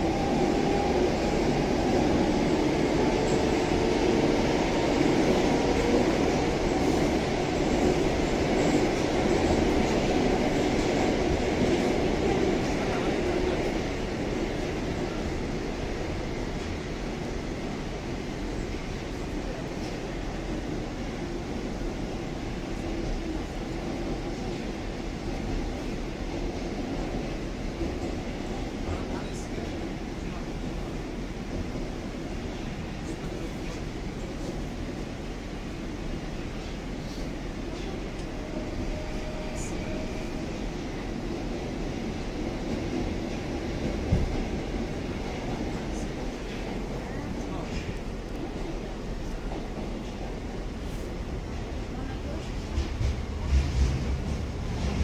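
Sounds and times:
metro train running noise: 0.0 - 55.0.

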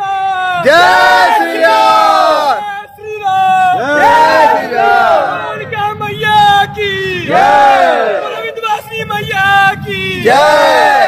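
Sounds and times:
men chanting together: 0.6 - 2.6, 3.7 - 5.6, 7.2 - 8.4, 10.2 - 11.0.

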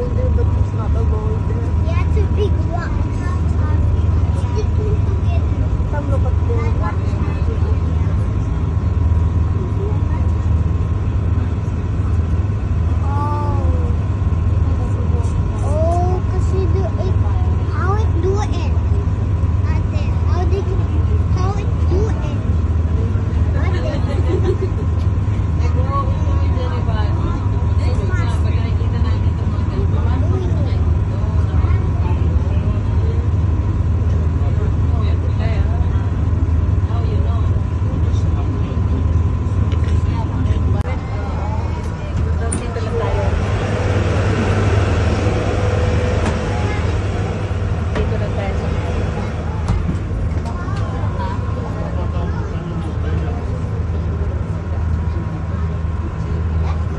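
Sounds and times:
boat engine droning: 0.0 - 56.9
people talking: 0.0 - 56.9.

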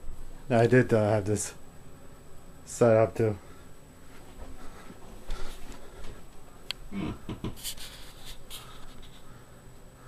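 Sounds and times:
man laughing: 6.9 - 7.6.

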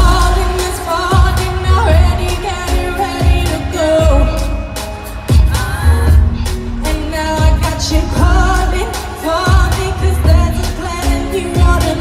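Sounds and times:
pop music beat: 0.0 - 12.0
singer's lead vocal: 0.0 - 12.0.

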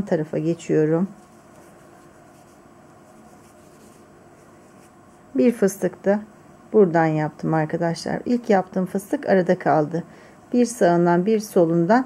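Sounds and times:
thread rustling over crochet hook: 0.8 - 5.5.

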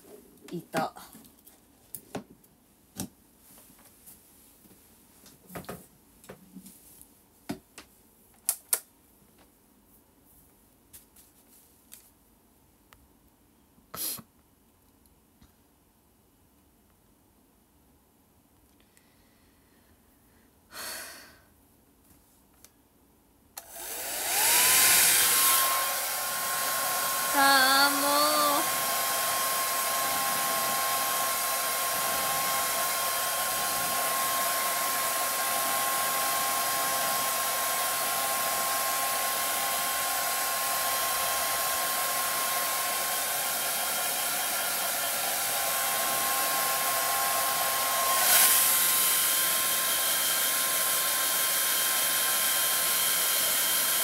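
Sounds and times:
person speaking: 0.0 - 1.2, 27.2 - 28.8
hair dryer running: 23.6 - 54.0.

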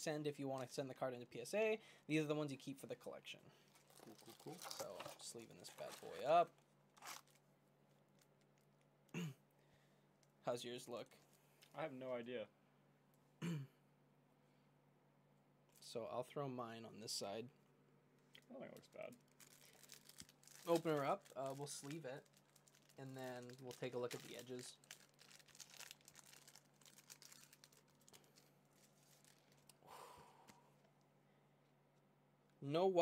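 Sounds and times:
plastic sleeve crinkling: 3.6 - 8.9, 18.7 - 29.8
man clearing his throat: 9.1 - 9.4, 13.4 - 13.8.

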